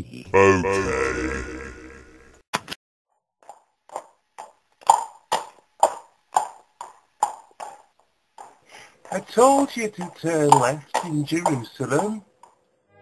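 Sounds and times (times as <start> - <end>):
horse hooves clip-clopping: 3.4 - 12.6.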